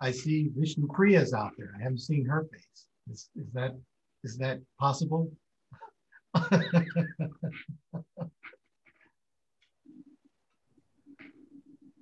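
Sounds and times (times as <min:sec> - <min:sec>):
man laughing: 0:06.3 - 0:08.9.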